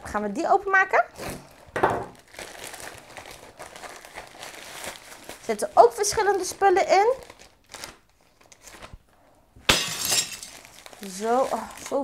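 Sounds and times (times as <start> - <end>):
plastic packaging rustling: 1.1 - 9.2, 9.8 - 12.0
loud plastic crinkling: 1.2 - 9.1, 9.8 - 12.0.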